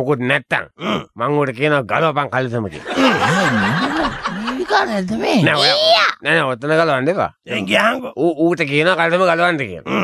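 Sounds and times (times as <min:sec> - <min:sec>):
person snickering: 0:02.8 - 0:04.6.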